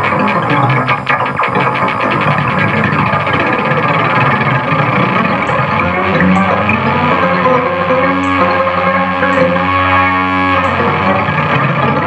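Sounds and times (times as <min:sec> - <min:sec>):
electronic synthesizer music: 0:00.0 - 0:12.0.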